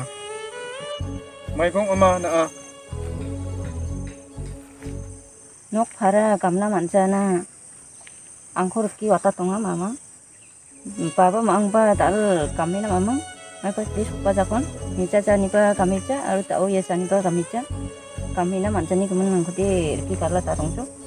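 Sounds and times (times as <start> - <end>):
high insect drone: 0.0 - 21.0
low thuds: 2.9 - 5.3.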